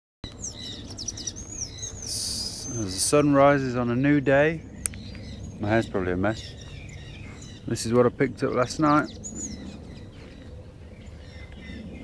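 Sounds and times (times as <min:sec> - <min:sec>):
birds chirping: 0:00.2 - 0:12.0.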